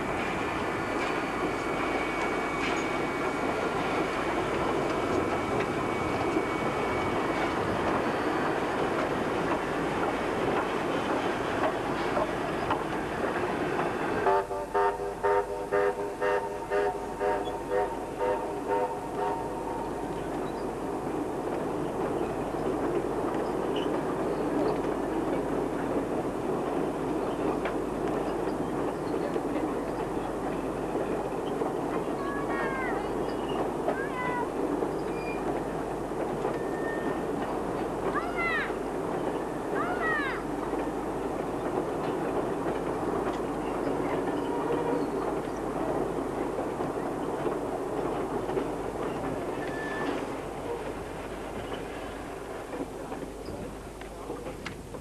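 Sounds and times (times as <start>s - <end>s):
train wheels clattering on rails: 0.0s - 55.0s.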